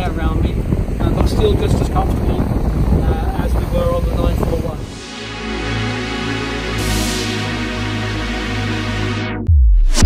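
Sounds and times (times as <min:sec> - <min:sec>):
man talking: 0:00.0 - 0:05.0
wind on microphone: 0:00.0 - 0:06.0.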